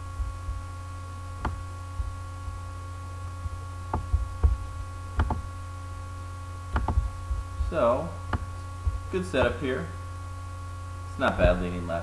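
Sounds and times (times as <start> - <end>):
electrical mains hum: 0.0 - 12.0
computer mouse clicks: 5.2 - 5.5, 6.8 - 7.0.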